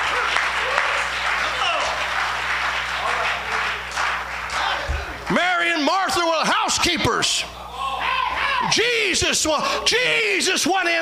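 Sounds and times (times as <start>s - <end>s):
congregation applauding: 0.0s - 6.0s.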